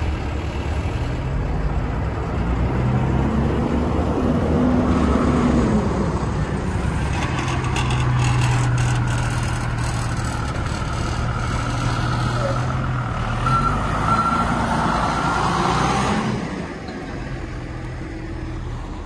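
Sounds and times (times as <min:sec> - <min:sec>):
diesel bus engine idling: 0:00.0 - 0:02.8
short beeps: 0:13.4 - 0:14.6.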